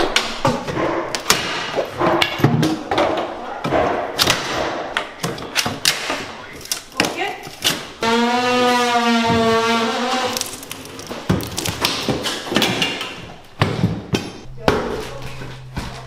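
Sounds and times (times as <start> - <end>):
creaking squeal of wood: 8.0 - 11.1.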